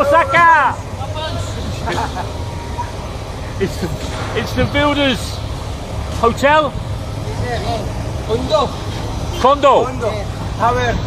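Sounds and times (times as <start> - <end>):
street traffic rumble: 0.0 - 11.0
person laughing: 1.7 - 2.5.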